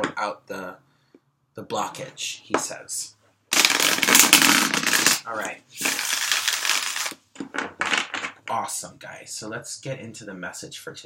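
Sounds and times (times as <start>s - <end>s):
cards being shuffled: 3.5s - 7.2s.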